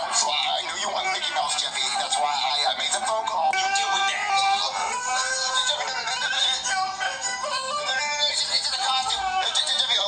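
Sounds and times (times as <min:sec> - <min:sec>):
auto-tuned voice over music: 0:00.0 - 0:10.0.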